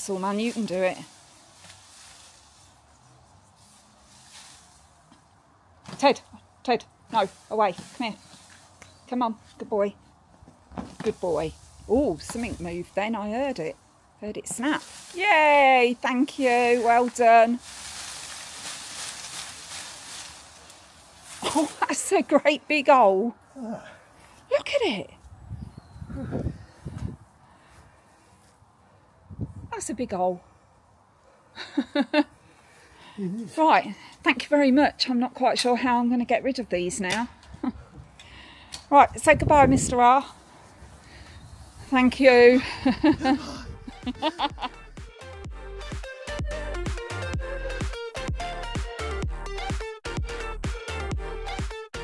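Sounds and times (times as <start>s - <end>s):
rustling leaves and stems: 0.0s - 43.4s.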